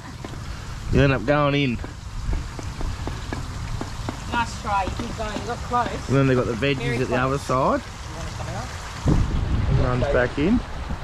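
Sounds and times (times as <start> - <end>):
water plinks and drips: 0.0 - 10.2.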